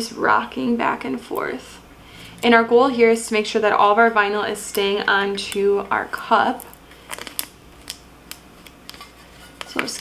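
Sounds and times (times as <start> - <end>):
tape peeling with ticks and crackles: 4.7 - 10.0.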